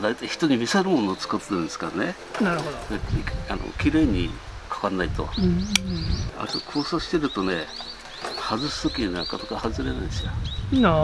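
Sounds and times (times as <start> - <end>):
low conversational voices: 0.0 - 11.0
small bird chirping: 5.3 - 11.0.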